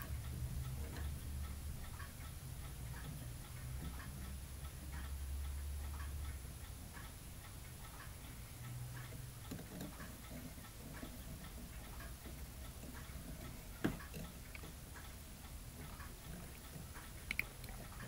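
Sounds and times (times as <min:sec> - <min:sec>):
faint regular ticking: 0:00.0 - 0:18.0
low steady hum: 0:00.0 - 0:18.0.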